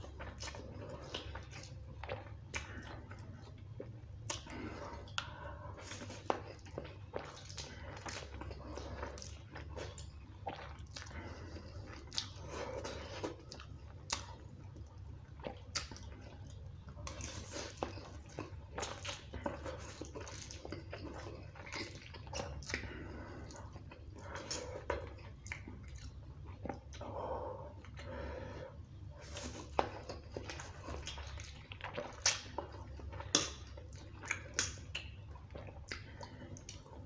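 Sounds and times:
person chewing noodles: 0.0s - 37.0s
steady low hum: 0.0s - 37.0s
mouth clicks and smacks: 11.8s - 22.9s, 29.4s - 37.0s.

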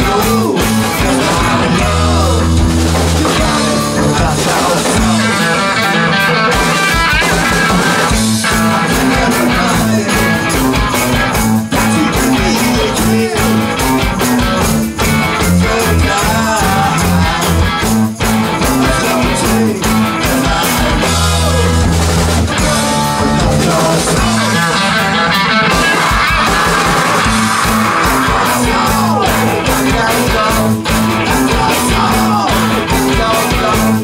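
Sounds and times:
person singing: 0.0s - 34.0s
rock band playing loud: 0.0s - 34.0s.

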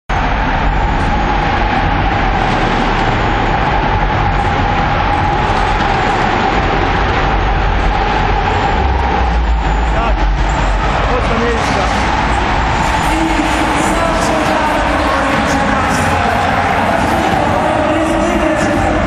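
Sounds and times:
cars running in an arena: 0.1s - 19.0s.

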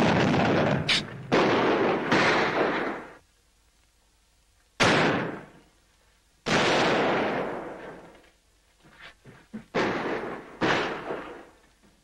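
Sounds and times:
artillery blasts: 0.0s - 3.2s, 4.8s - 5.6s, 6.4s - 8.1s, 9.7s - 11.6s.

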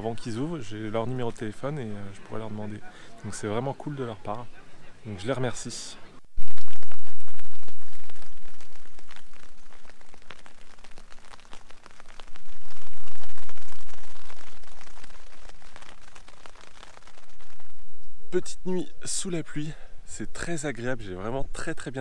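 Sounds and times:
rain pattering on tent fabric: 0.0s - 4.6s, 6.4s - 18.6s.

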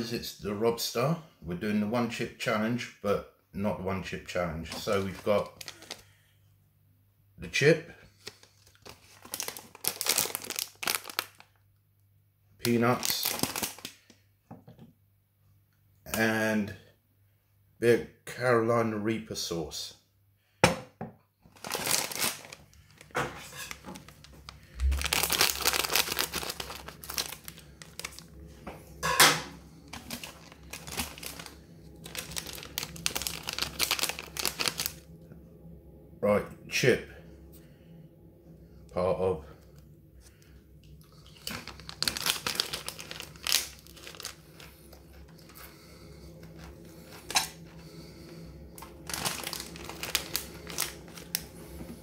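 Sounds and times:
plastic snack packets crinkling: 4.3s - 6.3s, 8.0s - 11.6s, 12.6s - 14.2s, 21.5s - 28.5s, 29.8s - 35.0s, 41.1s - 51.7s.

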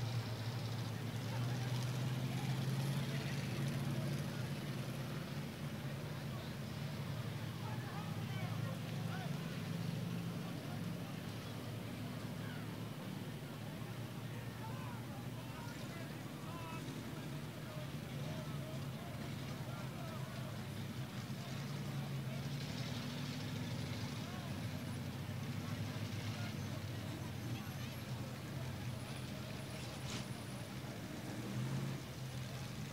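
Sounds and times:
people talking: 0.0s - 32.9s
vehicle engines idling: 0.0s - 32.9s.

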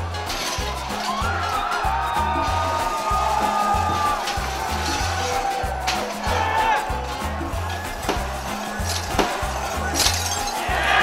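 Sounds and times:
gliding held melody: 0.0s - 10.7s.

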